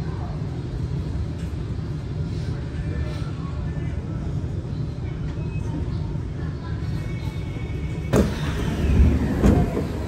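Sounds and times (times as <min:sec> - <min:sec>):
train doors sliding open: 0:08.0 - 0:10.0.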